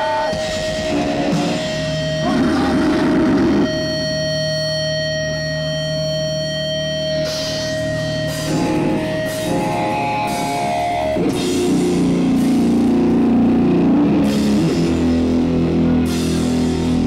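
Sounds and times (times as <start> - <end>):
band playing: 0.0 - 17.0
distorted electric guitars: 0.0 - 17.0.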